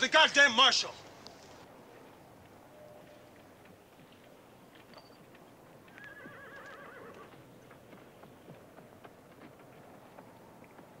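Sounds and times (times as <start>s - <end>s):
horse whinnying: 5.9s - 7.3s.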